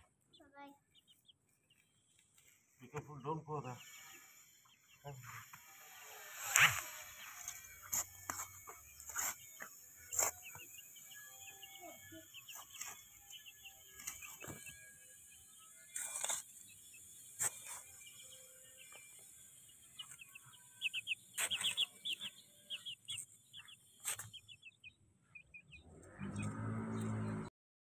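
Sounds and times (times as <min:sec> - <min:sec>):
chicks peeping: 0:00.0 - 0:27.5.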